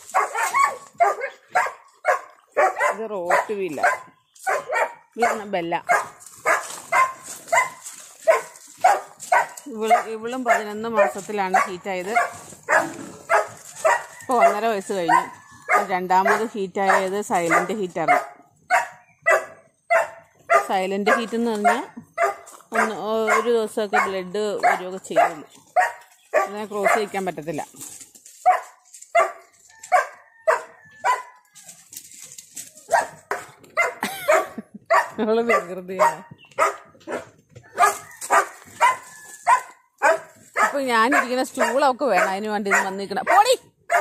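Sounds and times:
dog barking: 0:00.1 - 0:27.2, 0:28.4 - 0:31.4, 0:32.9 - 0:44.0.

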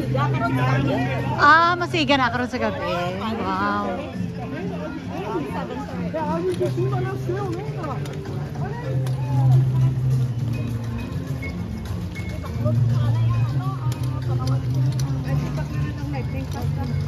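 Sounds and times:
chatter of passing people: 0:00.0 - 0:17.0.

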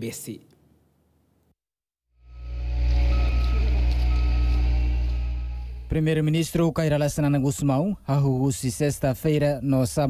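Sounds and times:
reversing alarm beeps: 0:02.7 - 0:05.8.

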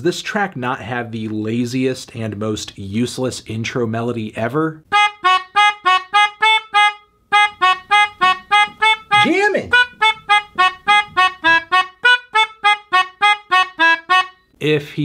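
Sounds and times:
melodica short notes: 0:04.9 - 0:14.6.

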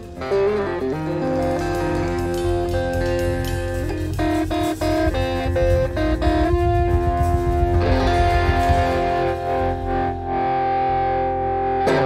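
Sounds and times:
amplified guitar chord ringing: 0:00.0 - 0:12.0
blues funk band music: 0:00.0 - 0:12.0.

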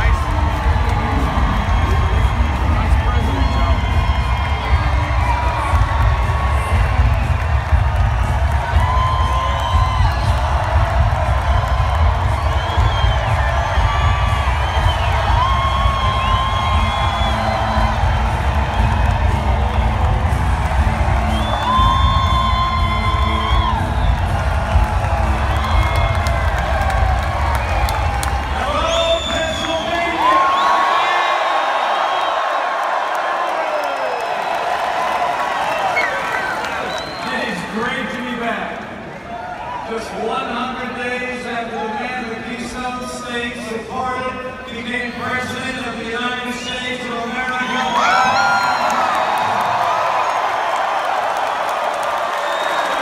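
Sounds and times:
arena crowd cheering: 0:00.0 - 0:53.0
whoops and whistles: 0:35.8 - 0:37.4, 0:47.6 - 0:49.2.

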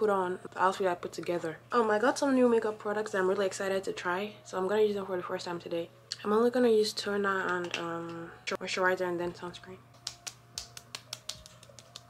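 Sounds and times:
palms patting face: 0:07.4 - 0:08.2, 0:09.9 - 0:12.0.

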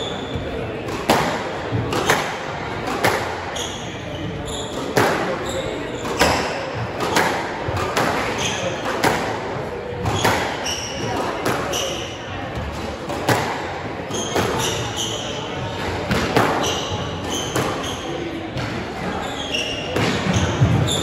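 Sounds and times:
shoes squeaking on hardwood floor: 0:03.5 - 0:06.6, 0:16.6 - 0:18.3, 0:19.0 - 0:21.0.

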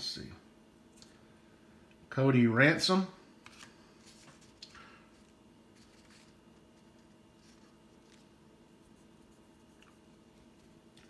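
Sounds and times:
cards clicking and sliding: 0:03.4 - 0:04.8.

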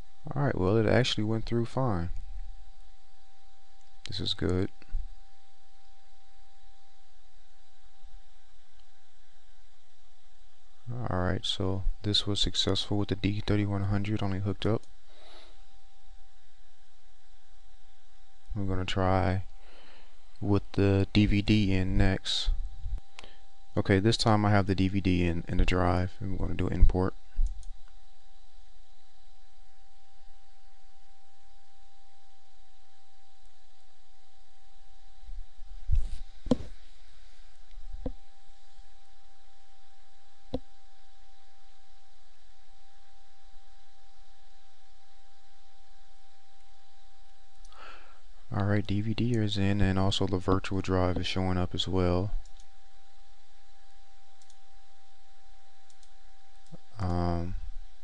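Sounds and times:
background hiss: 0:00.0 - 0:29.5, 0:32.3 - 0:58.0
steady low hum: 0:00.0 - 0:58.0
thin constant whine: 0:00.0 - 0:58.0
computer mouse click: 0:54.4 - 0:54.6, 0:55.9 - 0:56.8.

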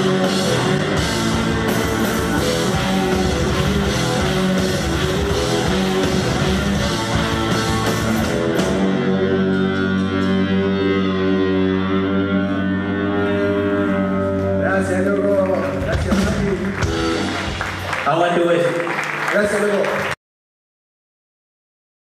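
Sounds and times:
rock band final chord: 0:00.0 - 0:14.7
man's voice: 0:14.5 - 0:16.8, 0:18.0 - 0:20.1.

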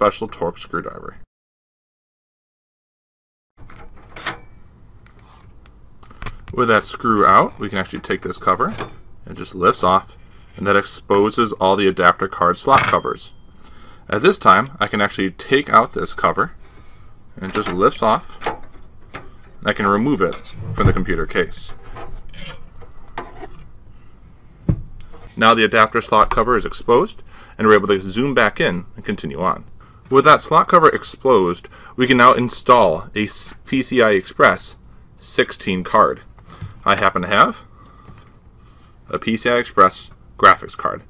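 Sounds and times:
dull thump: 0:24.6 - 0:24.9.

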